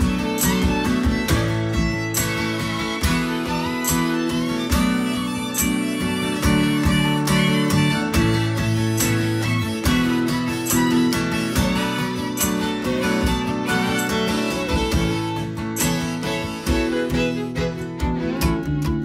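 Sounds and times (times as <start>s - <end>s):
acoustic guitar strumming: 0.0s - 19.0s
harmonica long held notes: 0.0s - 19.0s.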